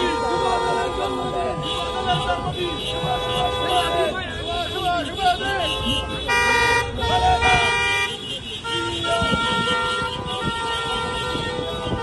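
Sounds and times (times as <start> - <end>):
car horns honking: 0.0 - 12.0.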